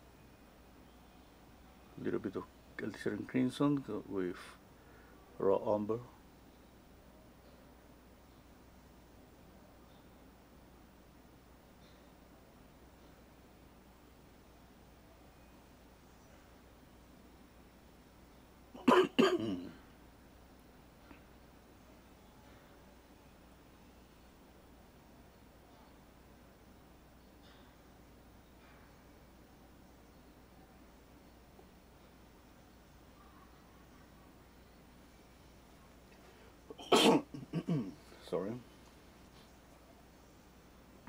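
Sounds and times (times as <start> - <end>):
person coughing: 18.8 - 19.8, 36.7 - 38.0
throat clearing: 18.8 - 19.8, 36.7 - 38.0.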